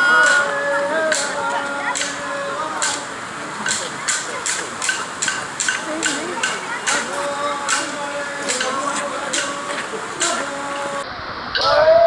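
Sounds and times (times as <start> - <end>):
crowd voices: 0.0 - 12.0
clapsticks clicking: 2.8 - 3.0, 3.6 - 7.1.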